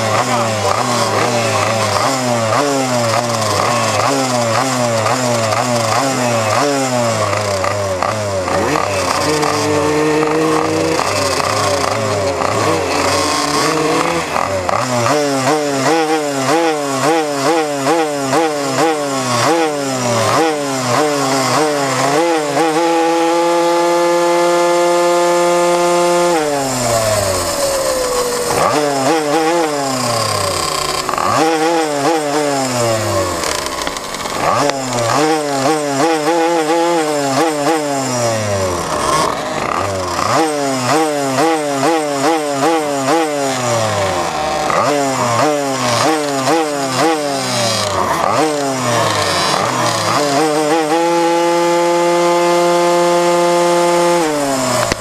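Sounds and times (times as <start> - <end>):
minibike engine revving: 0.0 - 55.0.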